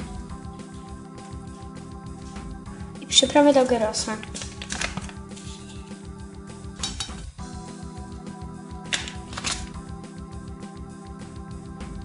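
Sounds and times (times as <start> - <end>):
background music: 0.0 - 12.0
spice shaker rustling: 4.2 - 6.0.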